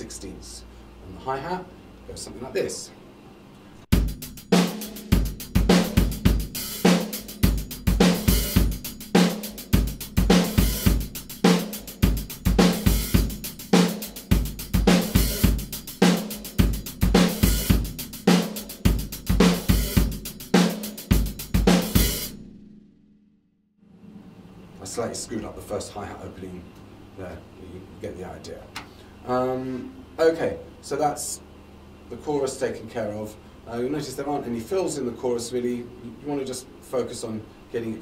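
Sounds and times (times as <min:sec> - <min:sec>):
drum kit disco groove: 0:03.9 - 0:22.4.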